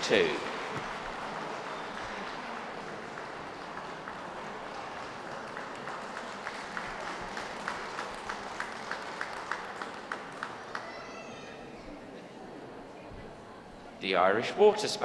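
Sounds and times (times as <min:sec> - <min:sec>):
sharp regular clapping: 0:00.0 - 0:11.0
audience applauding: 0:00.0 - 0:11.5.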